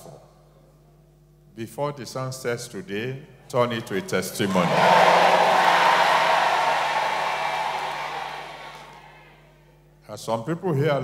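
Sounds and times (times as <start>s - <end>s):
congregation shouting response: 4.3s - 9.3s.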